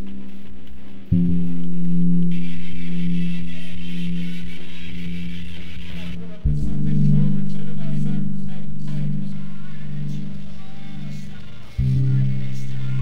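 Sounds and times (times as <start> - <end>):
low held guitar-like notes: 0.0 - 13.0.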